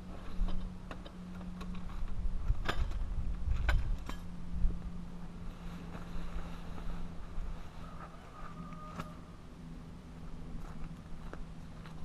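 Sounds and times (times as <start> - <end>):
steady low hum: 0.0 - 12.0
wind rumble on microphone: 1.7 - 7.8.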